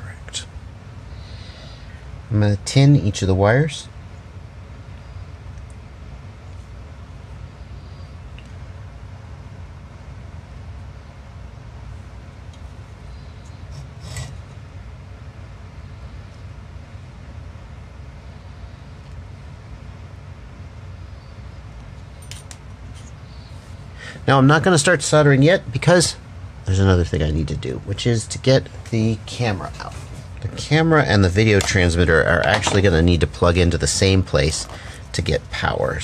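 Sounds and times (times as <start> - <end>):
low background hum: 0.0 - 36.0.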